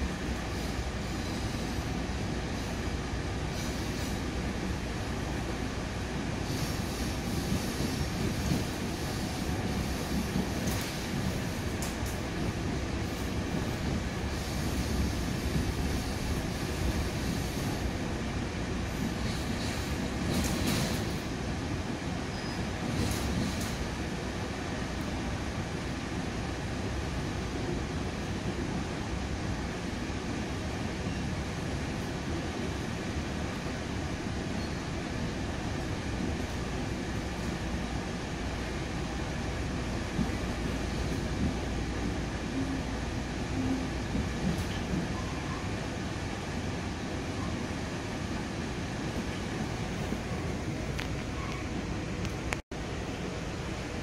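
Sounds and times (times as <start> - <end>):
train wheels rumbling: 0.0 - 54.0.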